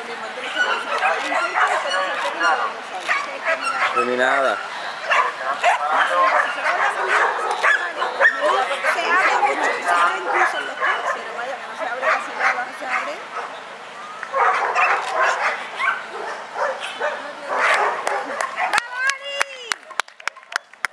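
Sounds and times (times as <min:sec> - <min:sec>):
dog barking in high yips: 0:00.5 - 0:04.2, 0:05.1 - 0:09.3, 0:14.3 - 0:18.8.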